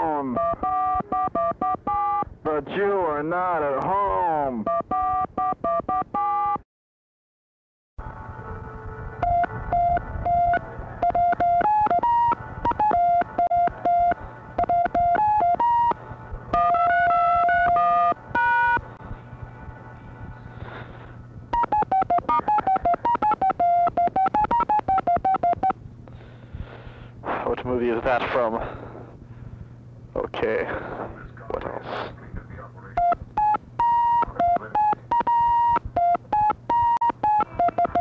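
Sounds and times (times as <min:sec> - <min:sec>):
telephone keypad beeps: 0:00.4 - 0:02.2, 0:04.7 - 0:06.6, 0:09.2 - 0:18.8, 0:21.5 - 0:25.8, 0:33.0 - 0:38.0
low steady hum: 0:08.0 - 0:38.0.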